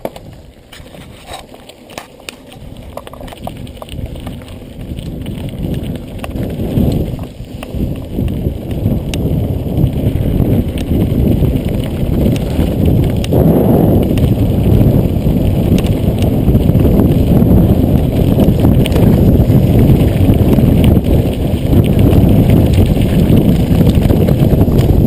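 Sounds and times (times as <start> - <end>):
bike rattling and clicking: 0.0 - 25.0
bike tyres on dirt and gravel: 0.0 - 25.0.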